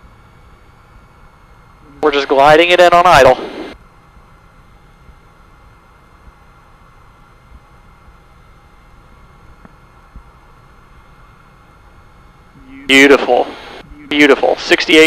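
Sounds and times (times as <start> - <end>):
aircraft cabin drone: 0.0 - 15.0.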